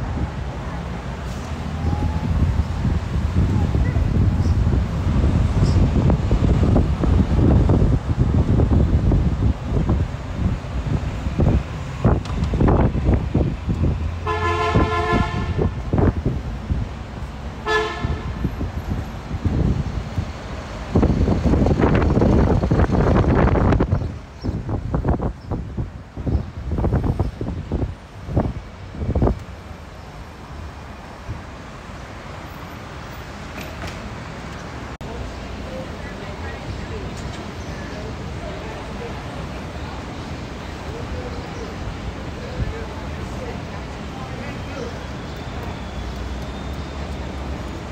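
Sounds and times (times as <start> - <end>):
street traffic: 0.0 - 47.9
wind buffeting microphone: 1.5 - 29.7
vehicle horn honking: 14.2 - 15.8, 17.6 - 18.4.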